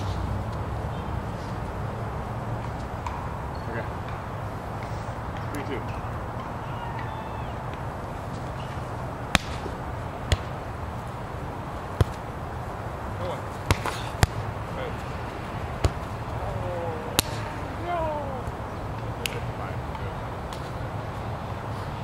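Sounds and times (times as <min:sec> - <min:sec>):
hands slapping volleyball: 0:09.3 - 0:10.6, 0:12.0 - 0:12.3, 0:13.6 - 0:14.5, 0:17.1 - 0:17.5, 0:19.0 - 0:20.8.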